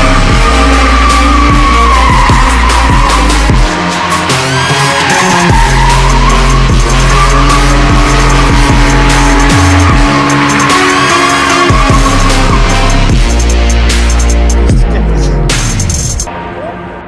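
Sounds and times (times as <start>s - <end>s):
car engine revving: 0.0s - 16.3s
music with heavy bass: 0.0s - 17.0s
tyres squealing: 0.4s - 13.1s.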